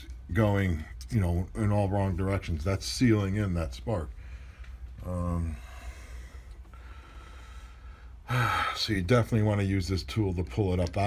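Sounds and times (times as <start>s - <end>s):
low steady hum: 0.0s - 11.0s
faint breathing: 4.1s - 8.9s.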